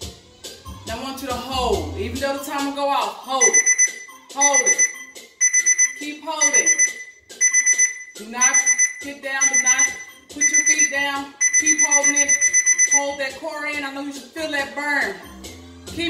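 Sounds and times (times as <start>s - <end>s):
timer alarm beeping: 3.2s - 13.4s.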